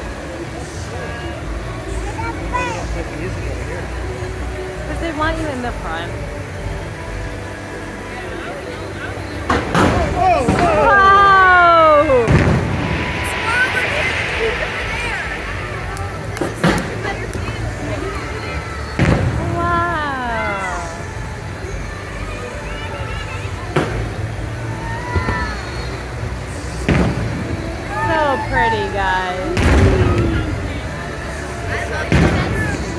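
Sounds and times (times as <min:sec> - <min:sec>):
fireworks bangs: 0:11.8 - 0:17.8, 0:18.9 - 0:19.7, 0:29.6 - 0:30.7, 0:32.0 - 0:32.9.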